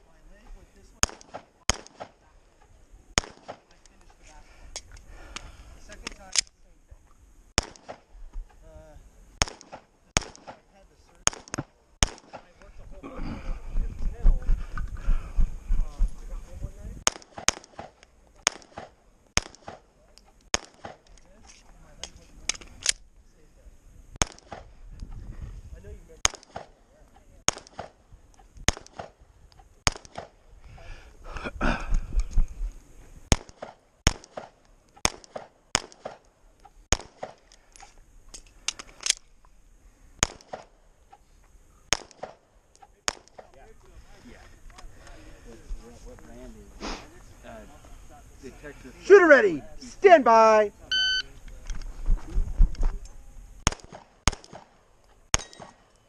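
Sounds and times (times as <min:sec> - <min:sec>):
pistol shots: 0:01.0 - 0:02.2, 0:03.2 - 0:03.7, 0:07.6 - 0:08.1, 0:09.4 - 0:10.6, 0:11.2 - 0:12.5, 0:17.0 - 0:19.9, 0:20.5 - 0:21.0, 0:26.2 - 0:26.8, 0:27.5 - 0:28.0, 0:28.7 - 0:29.2, 0:29.8 - 0:30.4, 0:33.3 - 0:36.3, 0:36.9 - 0:37.5, 0:40.2 - 0:40.8, 0:41.9 - 0:42.4, 0:43.0 - 0:43.5, 0:53.6 - 0:55.9.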